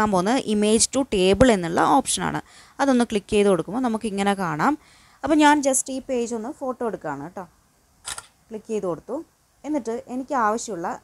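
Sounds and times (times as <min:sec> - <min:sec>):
phone camera shutter click: 0:08.0 - 0:08.4.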